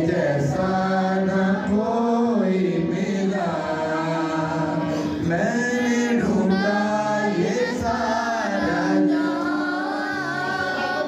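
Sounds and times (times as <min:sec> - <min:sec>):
woman singing worship song: 0:00.0 - 0:11.0.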